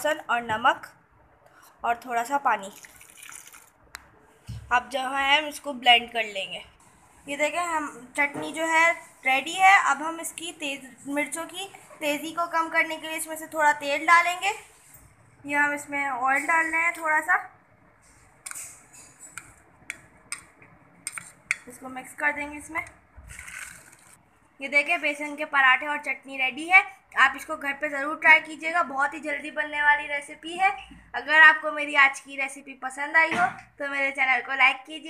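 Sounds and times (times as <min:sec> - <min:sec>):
woman speaking: 0:00.0 - 0:01.0, 0:01.8 - 0:02.8, 0:04.5 - 0:14.8, 0:15.4 - 0:17.6, 0:21.6 - 0:23.0, 0:24.6 - 0:35.0
water splashing into blender jar: 0:02.7 - 0:03.7.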